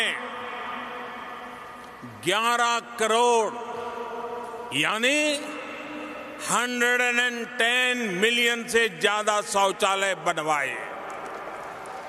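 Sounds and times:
man's amplified voice echoing: 0:00.0 - 0:11.6.

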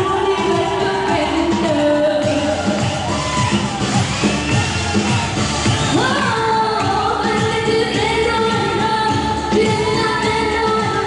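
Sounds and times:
amplified backing music: 0:00.0 - 0:11.0.

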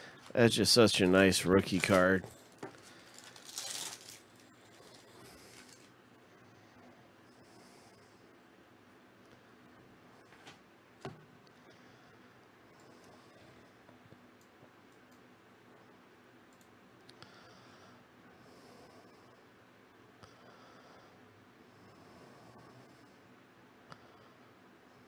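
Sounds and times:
trading cards rustling: 0:00.2 - 0:05.9.

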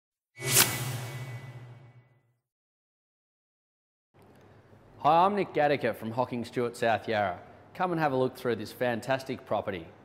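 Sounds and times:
low hum: 0:00.4 - 0:02.2
whoosh: 0:00.4 - 0:02.2.

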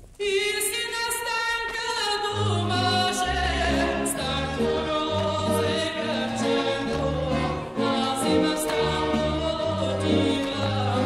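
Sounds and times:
folk singing: 0:00.2 - 0:11.0.

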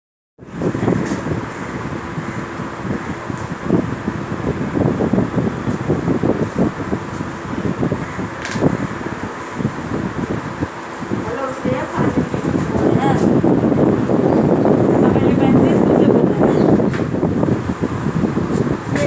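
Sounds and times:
steady rushing noise: 0:00.4 - 0:19.0.

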